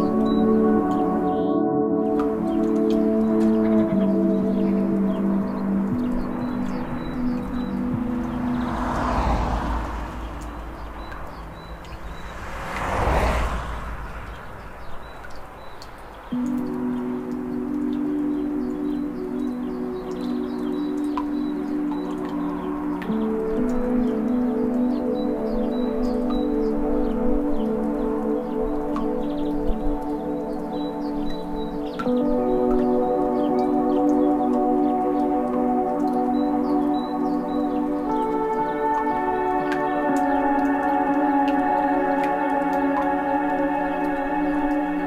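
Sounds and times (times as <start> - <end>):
ambient meditation music: 0.0 - 45.0.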